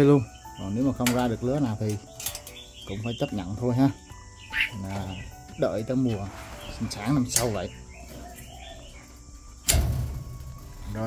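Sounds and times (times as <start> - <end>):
loud thump: 9.7 - 10.7.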